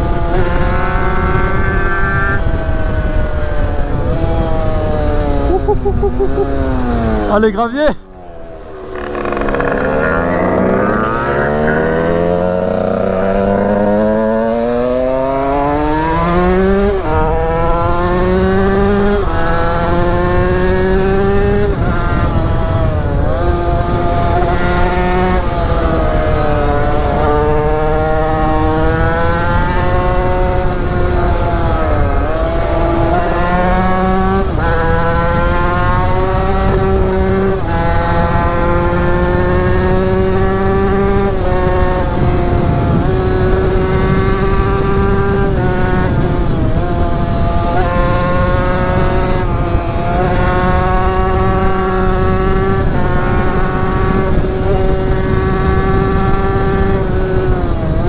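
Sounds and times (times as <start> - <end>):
motorcycle engine shifting gears: 0.0 - 58.0.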